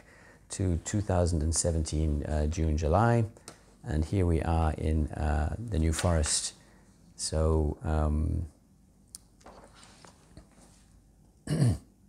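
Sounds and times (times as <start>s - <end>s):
man clearing his throat: 11.4s - 12.0s.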